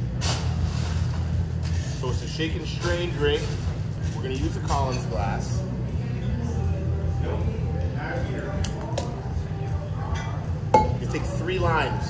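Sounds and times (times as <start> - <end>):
glassware and ice clinking: 10.1 - 11.2.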